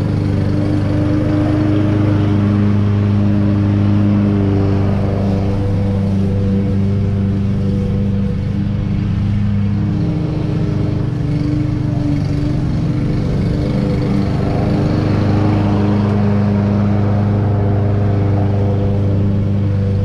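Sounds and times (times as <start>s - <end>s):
gas lawn mower engine running: 0.0s - 20.0s.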